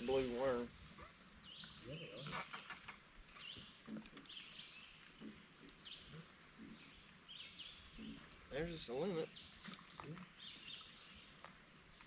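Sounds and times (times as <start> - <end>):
songbird chirping: 0.0 - 12.0.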